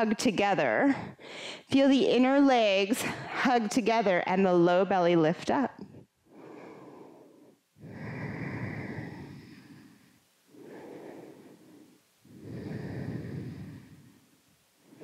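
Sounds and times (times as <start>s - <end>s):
woman breathing deeply: 0.9s - 1.7s, 6.2s - 15.0s.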